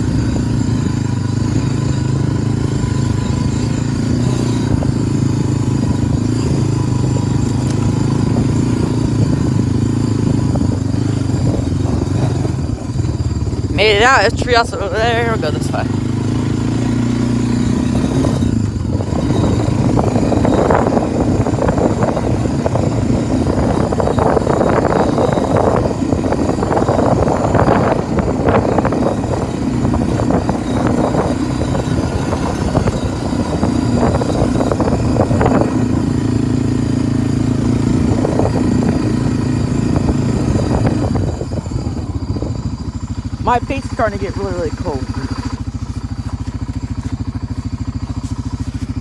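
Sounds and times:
atv engine running: 0.0s - 49.0s.

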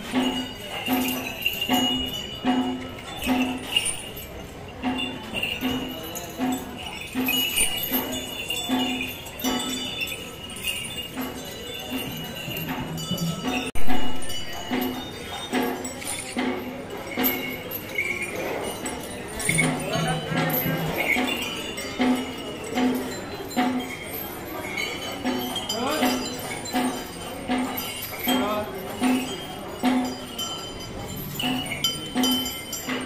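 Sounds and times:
elephant bells jingling: 0.0s - 33.0s.

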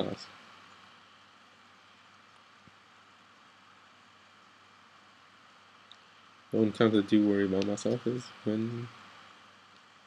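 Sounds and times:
microphone hiss: 0.0s - 10.0s.

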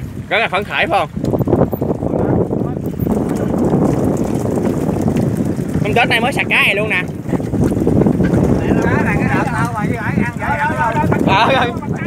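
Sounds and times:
boat engine low rumble: 0.0s - 12.0s
wind buffeting microphone: 0.0s - 12.0s
man talking: 8.6s - 12.0s.

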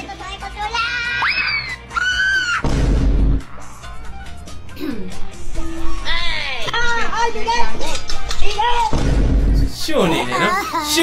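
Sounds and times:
heavy low boom: 2.6s - 4.4s, 8.9s - 9.8s.

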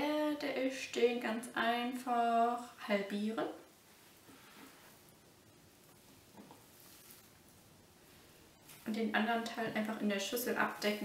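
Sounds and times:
faint soft sound: 2.2s - 11.0s.

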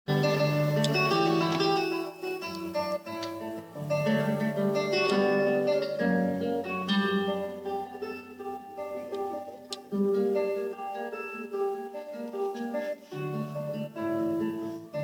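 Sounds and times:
solo guitar: 0.1s - 15.0s.

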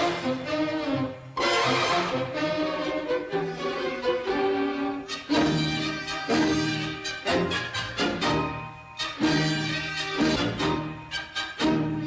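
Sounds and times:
orchestral strings playing: 0.0s - 12.0s.

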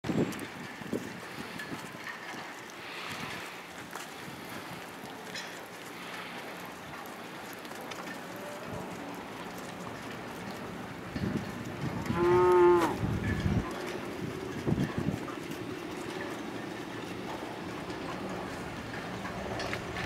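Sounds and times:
wind on microphone: 0.0s - 2.1s, 10.7s - 16.3s.

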